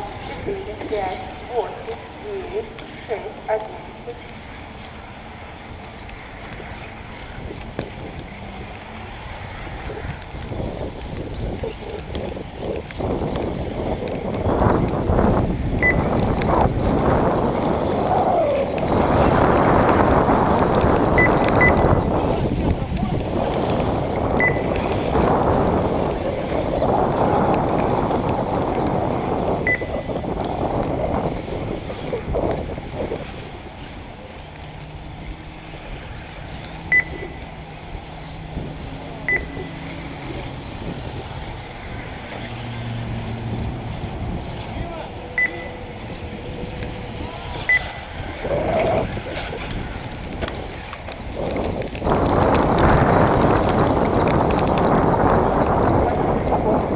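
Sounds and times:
wind buffeting microphone: 0.0s - 56.9s
short high electronic beeps: 24.4s - 24.7s, 29.7s - 30.0s, 36.9s - 37.4s, 39.3s - 39.7s, 45.4s - 45.7s.

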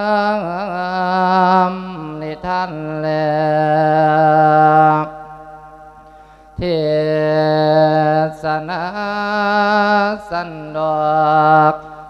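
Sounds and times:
monk chanting into a microphone: 0.0s - 12.0s.

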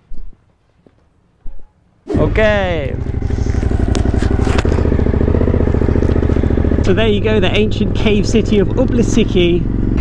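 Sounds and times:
motorcycle engine running: 2.1s - 10.0s.

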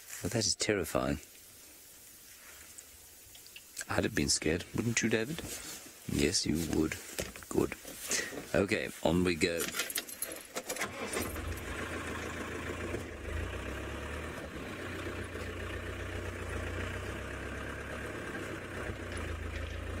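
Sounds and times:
vehicle engine rumbling: 3.8s - 20.0s
vehicle clicks and rattles: 9.4s - 15.8s, 17.9s - 20.0s.

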